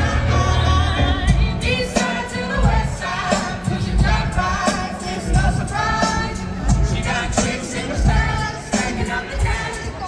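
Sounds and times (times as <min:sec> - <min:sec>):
heavy bass notes: 0:00.0 - 0:09.6
live band with singing: 0:00.0 - 0:10.0.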